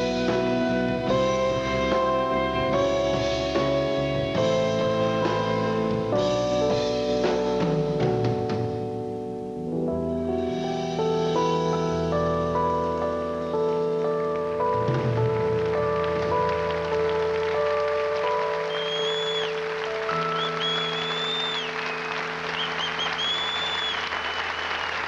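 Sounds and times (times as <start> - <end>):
live band holding chords: 0.0 - 25.0
audience applause: 14.8 - 25.0
high whistles from crowd: 18.6 - 25.0.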